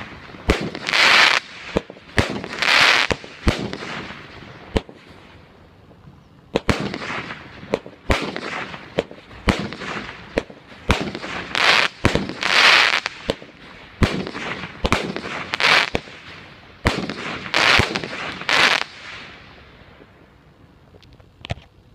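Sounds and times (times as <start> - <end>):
firework bangs: 0.0 - 5.3, 6.5 - 20.3
crackle of firework stars: 0.0 - 21.9.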